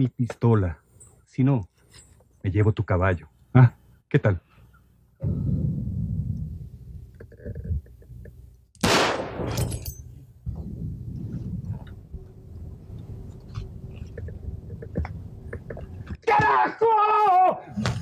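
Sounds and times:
low rumble: 5.2s - 7.2s, 9.6s - 16.2s.

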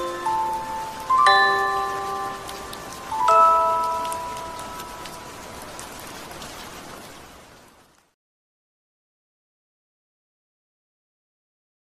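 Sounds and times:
rain falling steadily: 0.0s - 8.2s.

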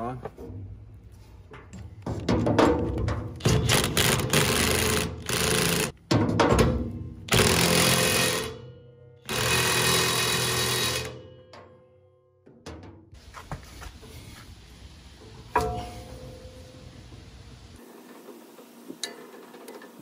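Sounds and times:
impact wrench hammering: 2.4s - 8.6s, 9.3s - 11.7s.

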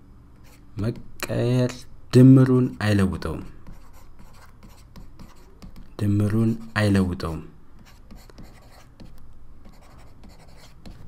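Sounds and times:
person speaking: 0.5s - 8.8s
stylus scratching on a tablet: 3.6s - 7.0s, 7.8s - 11.0s.

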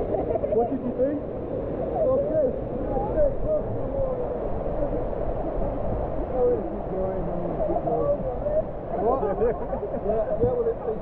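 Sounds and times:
waterfall and stream rushing: 0.0s - 11.0s.

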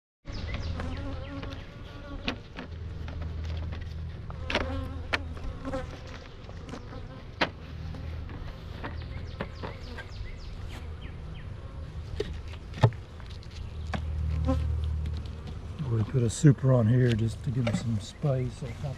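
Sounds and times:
bees buzzing: 0.3s - 13.2s, 13.9s - 15.8s.

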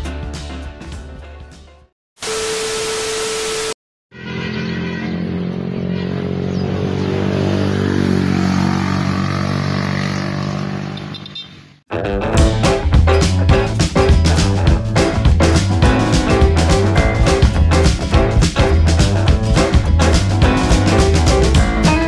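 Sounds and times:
wind and road noise: 4.2s - 11.8s
vehicle engine cruising: 4.7s - 11.7s.

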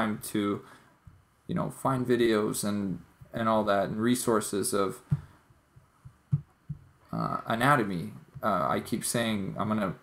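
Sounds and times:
soft low thumps: 1.0s - 1.4s, 3.0s - 3.7s, 4.9s - 7.4s, 8.0s - 8.9s.

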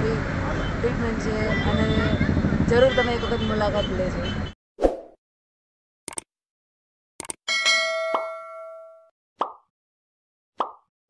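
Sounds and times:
bright bell ding: 7.5s - 9.1s.

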